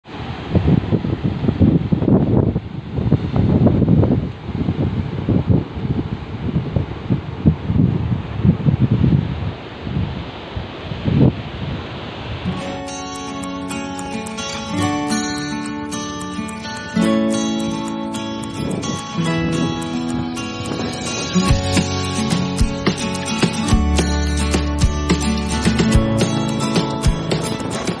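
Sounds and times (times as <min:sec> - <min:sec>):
wind buffeting microphone: 0:00.1 - 0:12.7, 0:18.5 - 0:28.0
strummed acoustic guitar: 0:12.5 - 0:28.0
surf breaking on rocks: 0:18.6 - 0:28.0.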